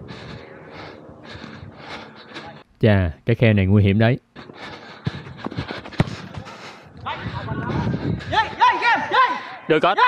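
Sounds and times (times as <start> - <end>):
football being kicked: 5.8 - 6.5.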